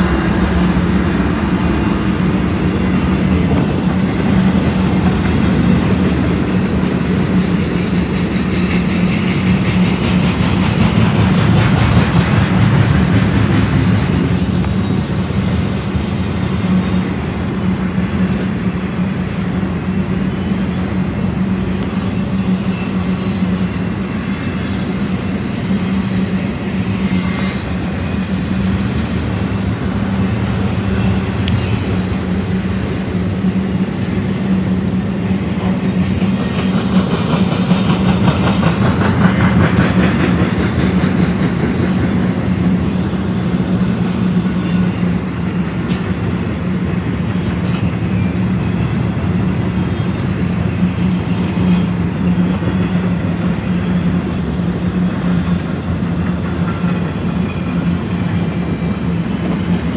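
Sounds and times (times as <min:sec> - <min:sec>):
train wheels rolling on rails: 0:00.0 - 0:59.9.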